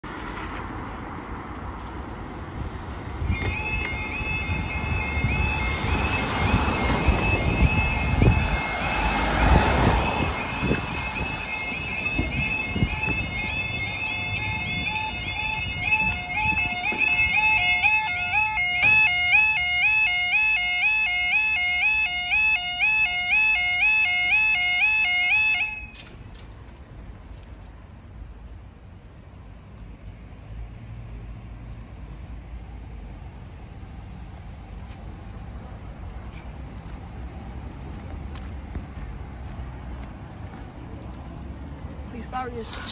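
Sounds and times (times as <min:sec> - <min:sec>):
road traffic passing: 0:00.0 - 0:42.9
lower-pitched alarm: 0:03.3 - 0:26.1
level crossing alarm warbling: 0:03.4 - 0:26.0.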